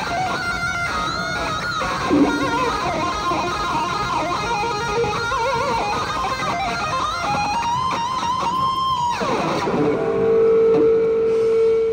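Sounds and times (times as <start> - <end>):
electric guitar notes: 0.0 - 11.9.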